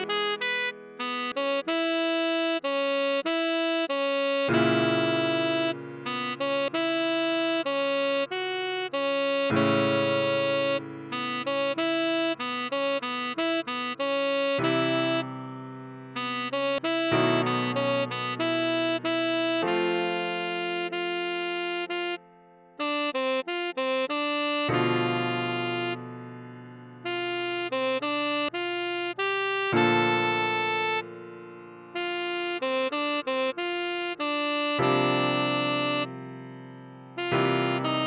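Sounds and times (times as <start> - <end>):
tenor saxophone melody: 0.0 - 38.0
sustained piano chords: 9.6 - 23.7.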